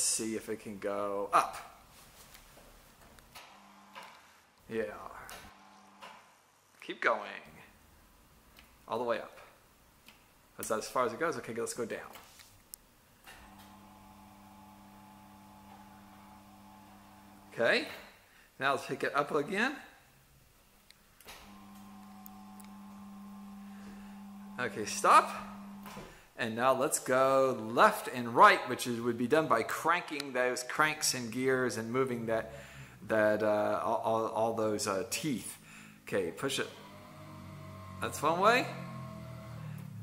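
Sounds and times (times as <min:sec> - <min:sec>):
small electric motor whining: 0:36.8 - 0:40.0.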